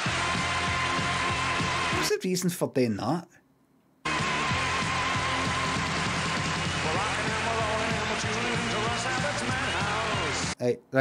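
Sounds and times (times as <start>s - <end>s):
theme music with steady beat: 0.0s - 2.1s, 4.1s - 10.6s.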